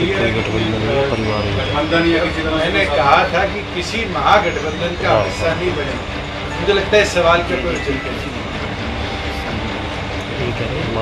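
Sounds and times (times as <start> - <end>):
faint indistinct voices: 0.0 - 11.0
low hum: 0.0 - 11.0.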